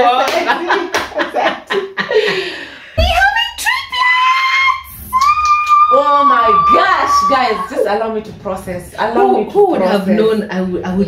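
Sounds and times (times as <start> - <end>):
woman shrieking with excitement: 4.5 - 7.8.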